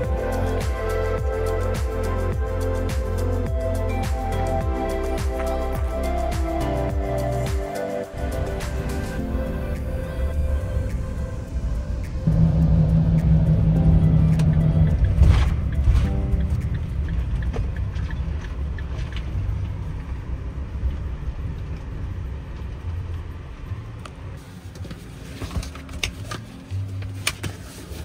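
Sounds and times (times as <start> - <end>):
background music: 0.0 - 18.4
engine and tyre rumble: 0.0 - 28.0.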